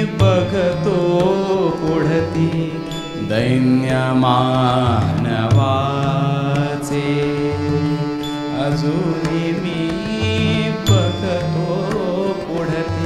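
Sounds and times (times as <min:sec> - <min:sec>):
harmonium melody: 0:00.0 - 0:13.0.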